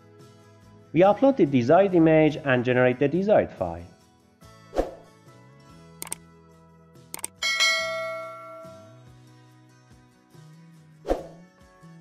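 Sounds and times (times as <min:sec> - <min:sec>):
soft background music: 0:00.0 - 0:12.0
quick double click: 0:06.0 - 0:06.2
bright bell chime: 0:07.4 - 0:09.1.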